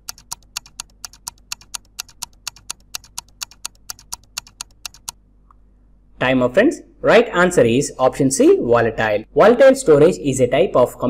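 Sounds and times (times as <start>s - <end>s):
timer ticking clicks: 0.0s - 5.2s.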